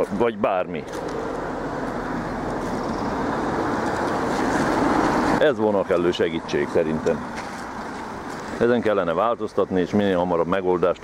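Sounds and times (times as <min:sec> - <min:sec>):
road vehicle approaching: 0:00.0 - 0:11.0.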